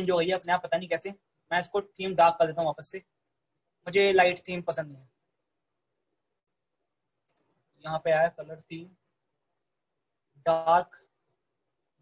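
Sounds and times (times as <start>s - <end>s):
person speaking: 0.0s - 5.2s, 7.3s - 9.2s, 10.2s - 11.2s
faint computer mouse clicks: 7.2s - 7.6s.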